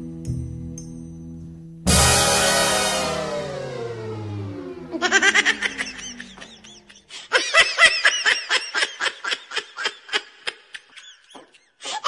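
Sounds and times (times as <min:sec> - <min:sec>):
music hit sliding down in pitch: 0:01.9 - 0:06.7
quick repeated laughter: 0:05.0 - 0:12.0.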